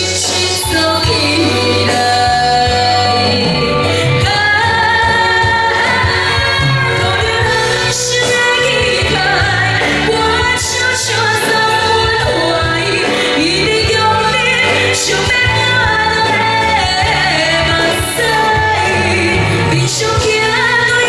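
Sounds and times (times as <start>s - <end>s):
live band playing: 0.0s - 21.0s
woman singing pop song: 0.0s - 21.0s.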